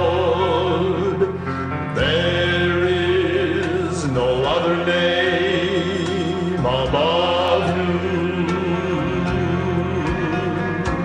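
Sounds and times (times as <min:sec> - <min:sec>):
men's vocal group singing gospel: 0:00.0 - 0:11.0.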